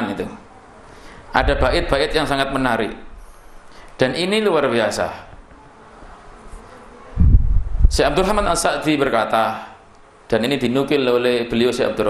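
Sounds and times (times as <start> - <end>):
loud low microphone rumble: 1.4 - 3.2, 7.2 - 8.8.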